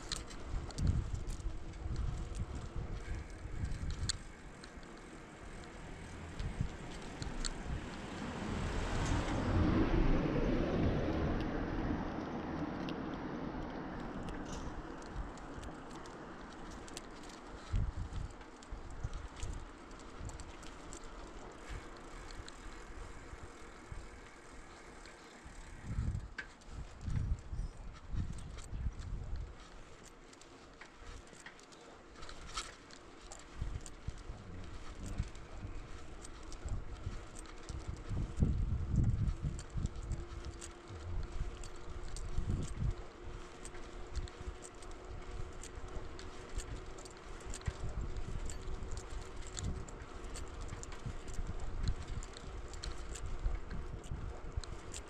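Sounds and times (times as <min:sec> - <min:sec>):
wind buffeting microphone: 0:00.0 - 0:31.4, 0:32.1 - 0:55.0
bicycle clicks and rattles: 0:00.0 - 0:55.0
bicycle tyre noise: 0:00.0 - 0:55.0.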